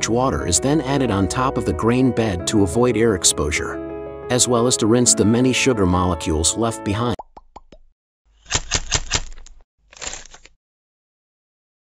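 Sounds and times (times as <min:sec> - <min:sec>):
rapid sharp clicks: 0:08.5 - 0:09.6.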